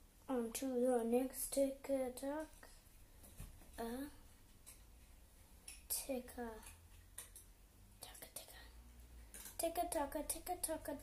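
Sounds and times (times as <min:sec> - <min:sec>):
faint whispers: 0:08.0 - 0:09.0.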